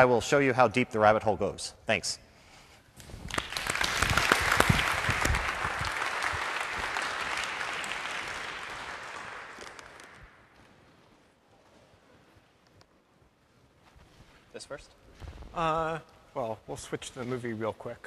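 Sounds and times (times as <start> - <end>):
audience applauding: 3.2 - 10.5.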